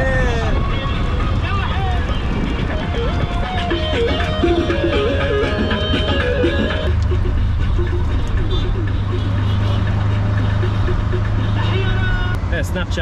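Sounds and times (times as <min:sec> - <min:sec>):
music: 0:00.0 - 0:12.4
auto-rickshaw engine droning: 0:00.2 - 0:13.0.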